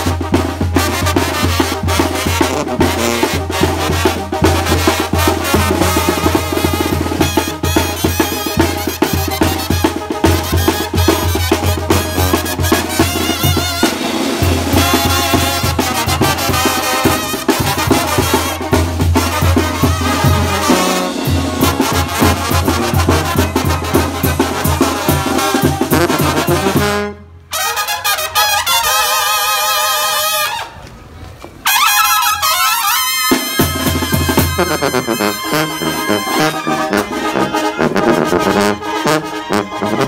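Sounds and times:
snare and bass drum: 0.0s - 27.0s, 33.2s - 38.8s
tuba bass line: 0.0s - 27.2s, 32.2s - 40.0s
horns playing wavering melody: 0.0s - 30.6s, 31.6s - 40.0s
brass band playing: 0.0s - 30.8s, 31.6s - 40.0s.

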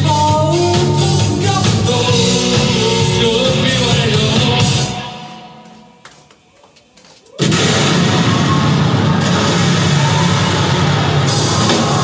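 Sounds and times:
rock band playing: 0.0s - 5.6s, 7.4s - 12.0s
crash of drums and cymbals: 7.4s - 12.0s.

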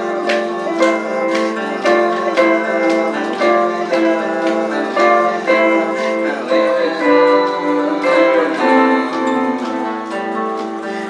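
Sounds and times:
acoustic guitar: 0.0s - 11.0s
electric guitar: 0.0s - 11.0s.

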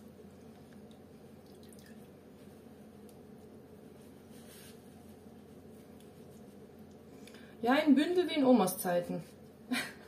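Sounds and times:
low room hum: 0.0s - 10.0s
whey dripping into pot: 0.3s - 2.3s.

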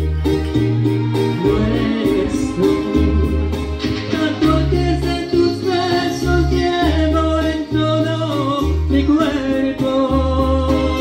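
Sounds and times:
ballad backing track: 0.0s - 11.0s.

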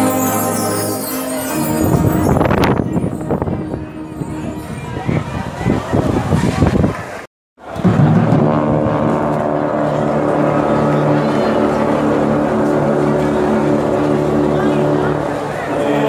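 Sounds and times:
brass band holding chord: 0.0s - 5.0s, 7.9s - 16.0s.

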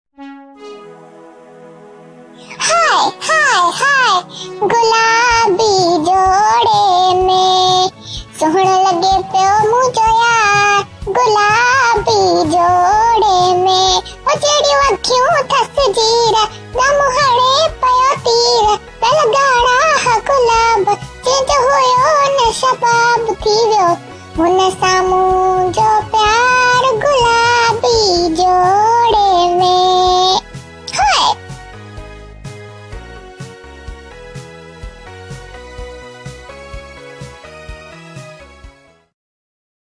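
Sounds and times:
background music: 0.2s - 39.1s
high-pitched cartoon-like singing: 2.4s - 31.4s.

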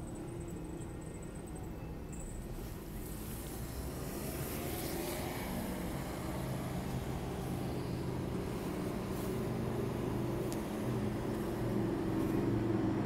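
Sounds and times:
street noise: 0.0s - 13.0s
vehicle engine running: 3.2s - 13.0s.

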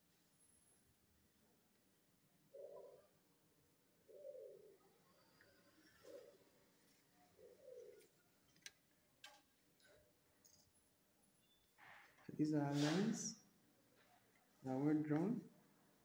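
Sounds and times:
dove cooing: 2.5s - 3.2s, 4.0s - 5.1s, 5.9s - 6.6s, 7.4s - 8.1s.

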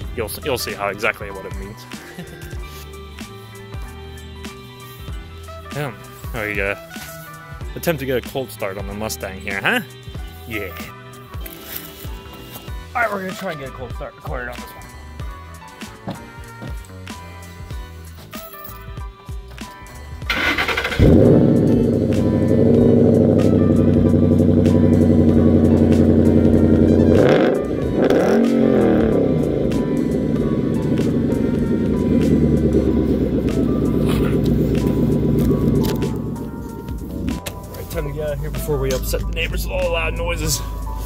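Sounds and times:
engine cranking: 20.3s - 23.4s
car engine loud fast idle: 20.3s - 27.0s.

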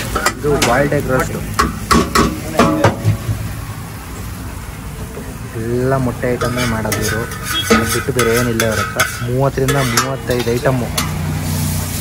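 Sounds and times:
egg sizzling on griddle: 0.0s - 12.0s.

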